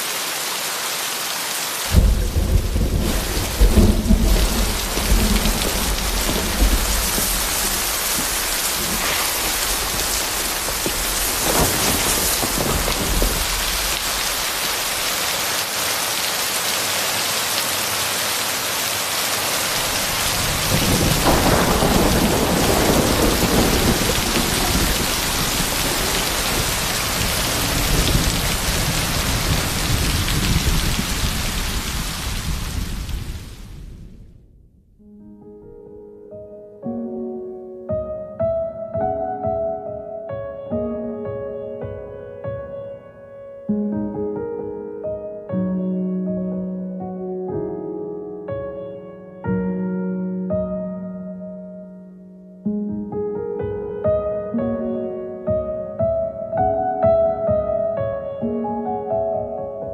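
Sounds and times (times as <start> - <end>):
heavy rain pouring: 0.0 - 34.4
rolling thunder: 1.9 - 15.1, 19.8 - 35.0.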